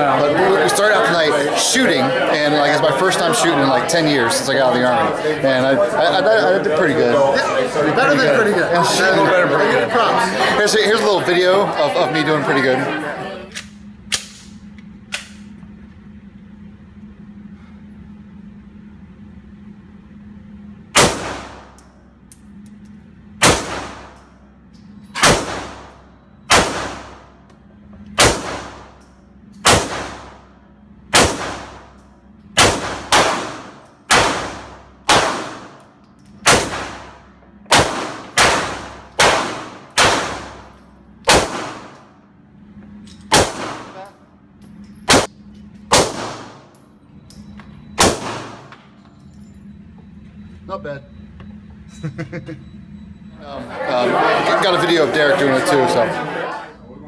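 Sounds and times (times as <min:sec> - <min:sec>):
low steady hum: 0:00.0 - 0:57.0
handgun shots echoing indoors: 0:13.5 - 0:15.5, 0:20.9 - 0:27.5, 0:28.2 - 0:42.1, 0:43.1 - 0:44.1, 0:44.8 - 0:48.9.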